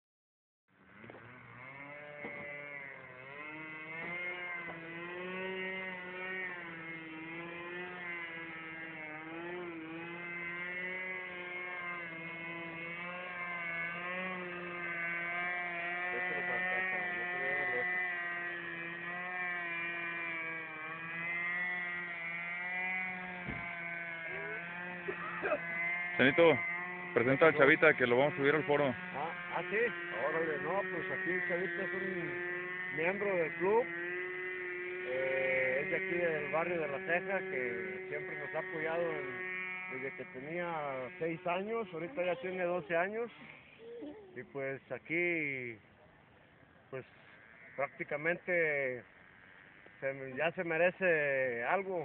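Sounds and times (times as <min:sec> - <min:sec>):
model airplane motor buzzing: 0:00.8 - 0:52.0.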